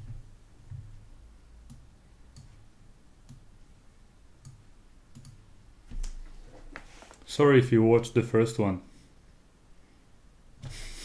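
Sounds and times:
computer clicks: 4.4s - 6.2s.

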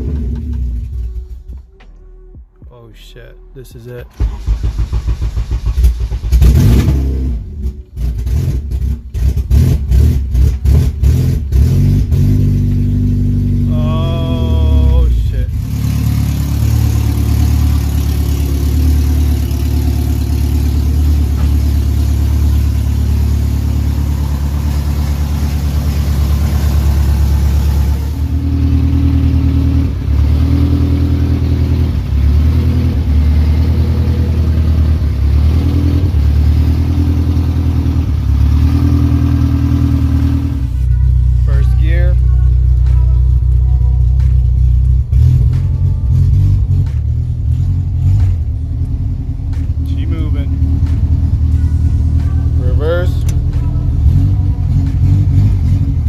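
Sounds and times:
car engine starting and idling: 0.0s - 56.0s.

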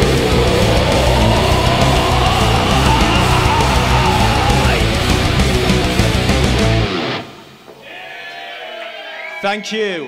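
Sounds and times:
audience whooping and cheering: 0.0s - 5.6s, 7.8s - 9.6s
heavy metal song: 0.0s - 7.4s.

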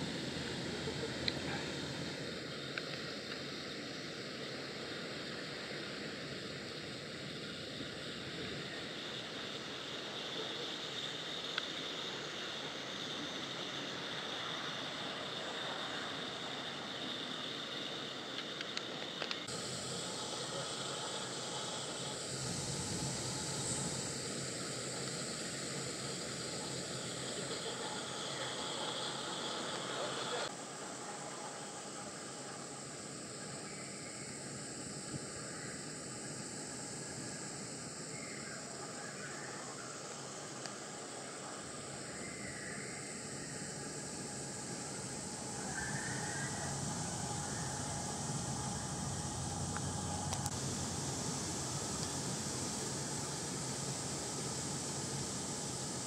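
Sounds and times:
ambient background noise: 0.0s - 56.0s.

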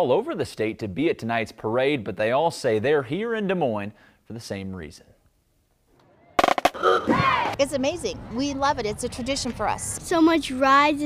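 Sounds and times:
loud sharp cracks: 6.4s - 6.8s.

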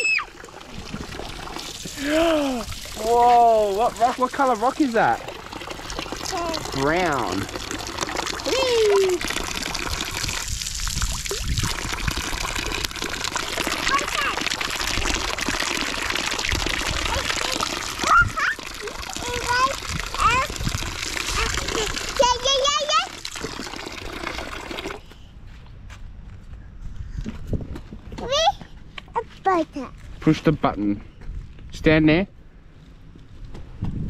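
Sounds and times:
water stream splashing on rock: 0.0s - 25.0s.

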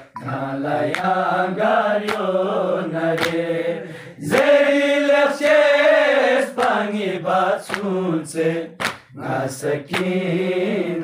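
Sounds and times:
sharp rhythmic beat: 0.0s - 3.6s.

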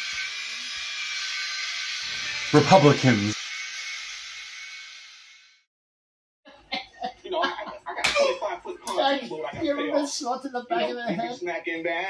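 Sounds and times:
electric shaver buzzing: 0.0s - 5.7s.

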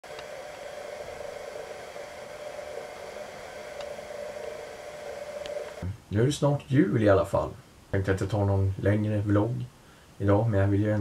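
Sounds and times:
constant hum: 0.0s - 11.0s
steady hiss: 0.0s - 11.0s.

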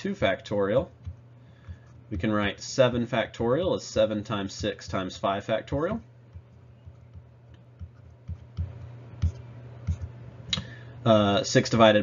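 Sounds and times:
steady low hum: 0.0s - 12.0s
stylus clicking on tablet: 6.3s - 10.2s.

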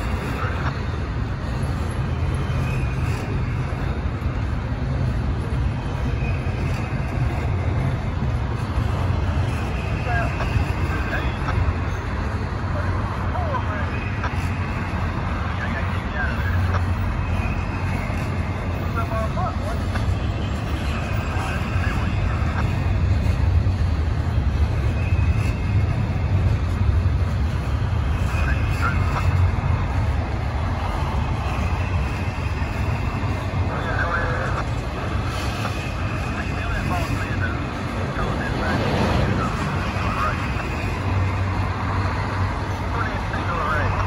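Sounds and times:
high wheel squeaks: 0.0s - 44.0s
train wheels rumbling on rail: 0.0s - 44.0s.

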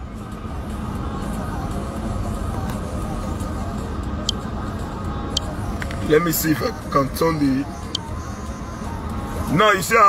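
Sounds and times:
car cabin engine rumble: 0.0s - 10.0s
traffic noise: 0.0s - 10.0s.

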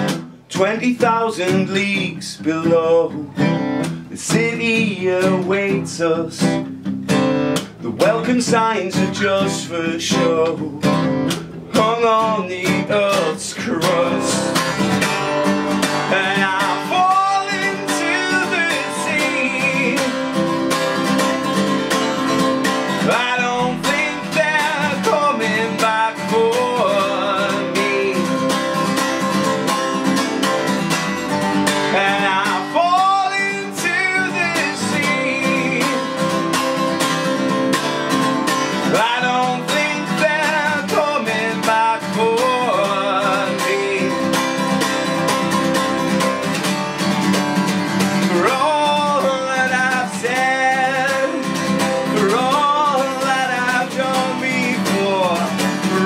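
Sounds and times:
man singing: 0.0s - 6.7s, 7.6s - 37.5s, 38.1s - 46.5s, 47.8s - 56.0s
acoustic guitar strumming: 0.0s - 56.0s.

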